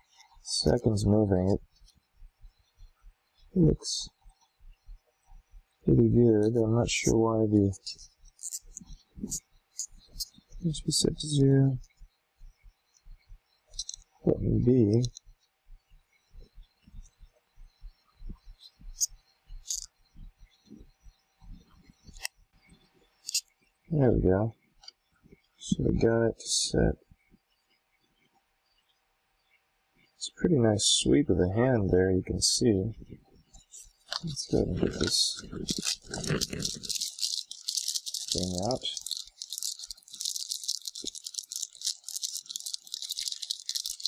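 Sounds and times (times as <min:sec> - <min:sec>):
sharp watch clicks: 0:07.8 - 0:10.3, 0:13.7 - 0:14.1, 0:18.9 - 0:19.9, 0:33.6 - 0:44.0
rattling and rustling of items: 0:13.7 - 0:14.0, 0:18.9 - 0:19.9, 0:33.5 - 0:44.0.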